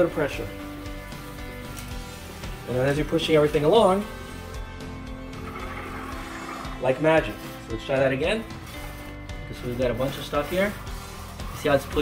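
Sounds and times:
background music with held notes: 0.0 - 12.0
broom brushing across floor: 0.0 - 12.0.

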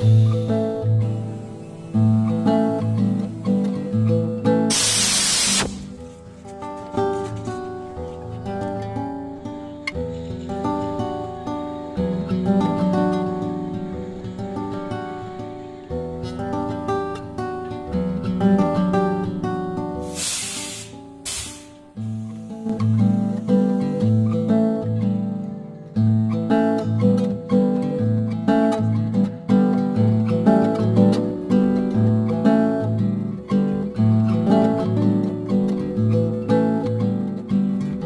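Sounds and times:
acoustic guitar chords: 0.0 - 38.0
loud spray hiss: 4.7 - 6.0, 20.0 - 23.4.

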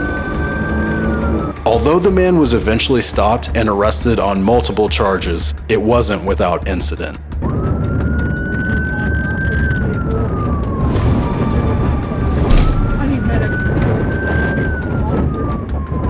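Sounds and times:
car driving fast on dirt: 0.0 - 2.2
police siren wailing: 0.0 - 3.4, 7.4 - 16.0.

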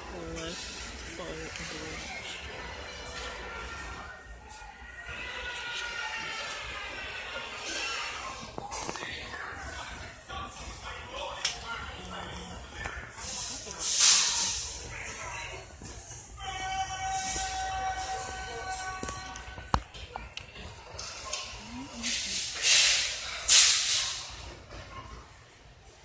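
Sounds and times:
store background noise: 0.0 - 26.0.

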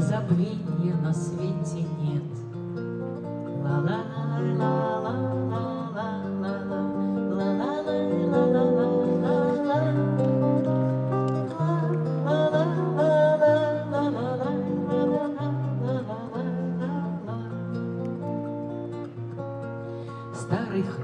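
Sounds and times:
acoustic guitar playing: 0.0 - 21.0
wordless sung melody: 0.0 - 21.0.

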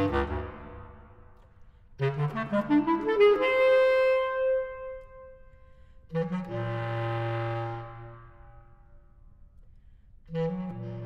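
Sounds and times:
bass clarinet notes: 0.0 - 1.3, 2.0 - 9.0, 10.3 - 11.0.

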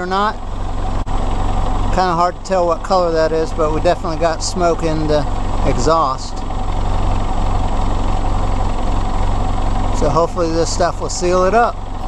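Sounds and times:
engine exhaust rumbling: 0.0 - 12.0.

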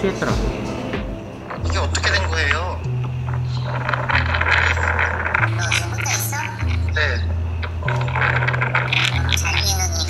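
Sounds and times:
voice on crackly phone call: 1.5 - 10.0.

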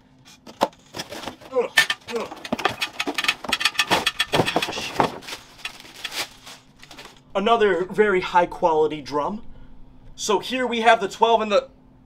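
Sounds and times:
plastic bag crinkling: 0.9 - 7.3.

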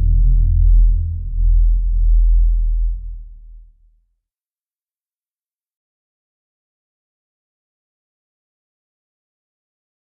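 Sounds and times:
synthesized bass drone: 0.0 - 3.6.

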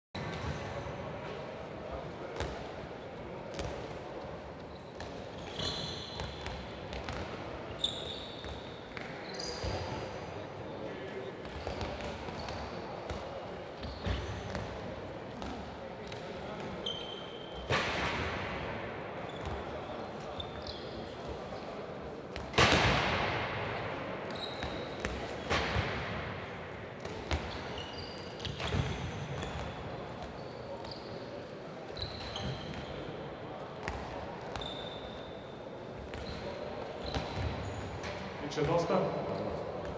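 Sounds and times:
handballs bouncing on court: 3.5 - 3.9, 6.2 - 7.4, 22.4 - 23.6
shoe squeaks: 4.7 - 6.5, 7.7 - 10.0, 16.8 - 17.7, 20.4 - 21.2, 24.3 - 25.5, 27.3 - 31.3, 31.9 - 33.0, 34.5 - 35.5, 36.1 - 38.2.

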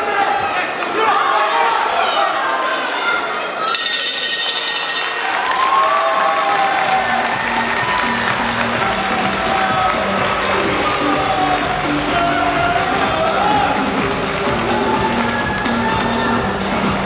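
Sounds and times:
crowd noise and voices: 0.0 - 17.0
ring bell ringing rapidly: 3.7 - 6.3
background music with steady beat: 6.9 - 17.0.

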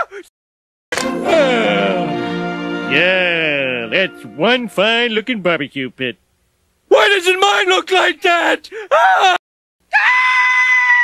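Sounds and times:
cartoon voice screaming: 6.9 - 11.0.

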